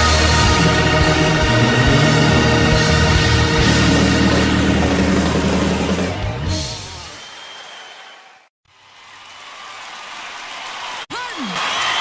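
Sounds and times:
rock song: 0.0s - 7.1s.

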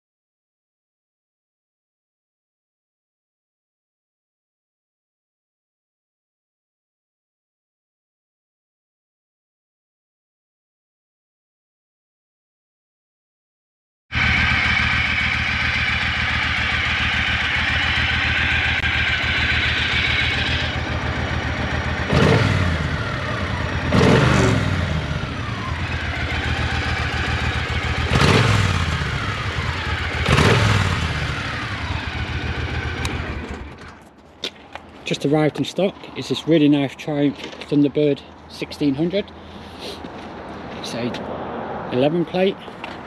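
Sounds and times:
motorcycle engine idling and revving: 14.1s - 34.4s.

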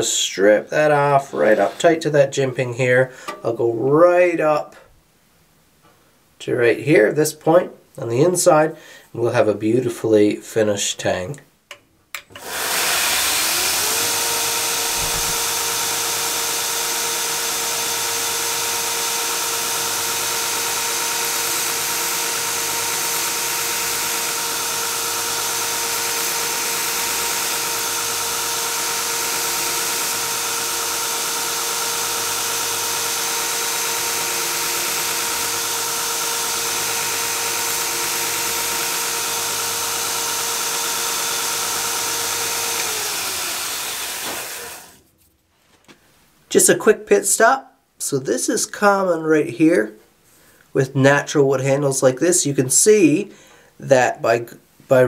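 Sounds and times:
belt grinder motor whine: 12.3s - 45.0s.

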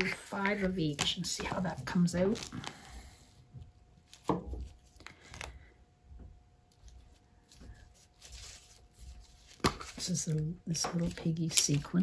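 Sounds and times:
handling rustle: 6.7s - 12.0s.

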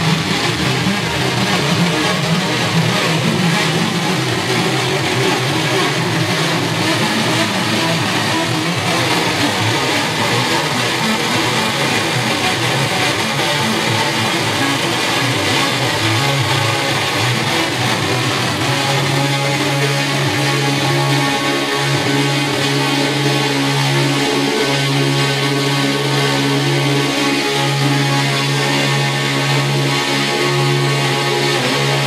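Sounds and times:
electric guitar playing: 0.0s - 32.0s
electronic backing music: 0.0s - 32.0s.

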